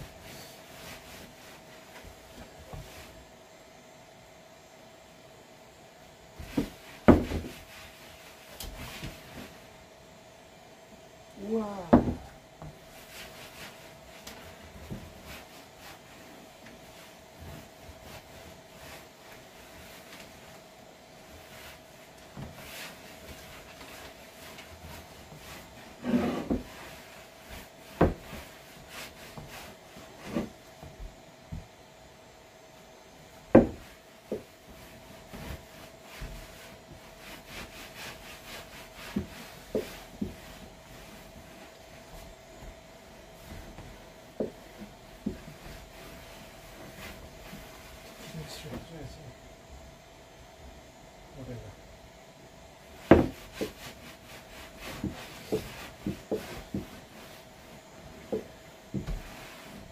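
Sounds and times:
rag rubbing wooden tabletop: 0:22.5 - 0:30.6, 0:33.6 - 0:42.3, 0:53.0 - 0:59.9
short knocks on wood: 0:33.5 - 0:34.4, 0:53.0 - 0:53.4.

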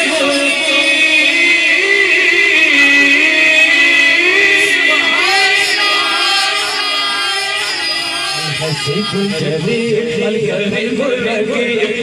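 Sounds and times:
man singing into a microphone: 0:00.0 - 0:12.0.

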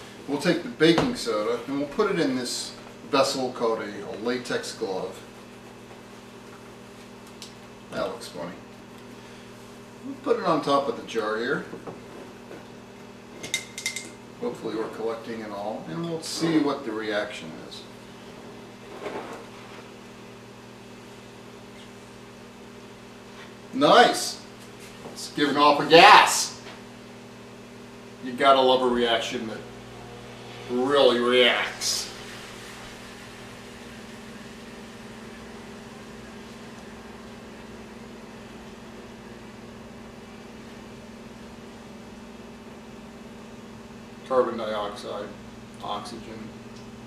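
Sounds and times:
low electrical hum: 0:00.0 - 0:47.0.

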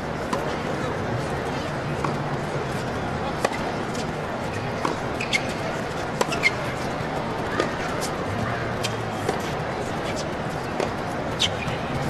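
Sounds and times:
tennis ball being hit: 0:02.0 - 0:06.6, 0:07.6 - 0:08.1, 0:09.2 - 0:12.0.

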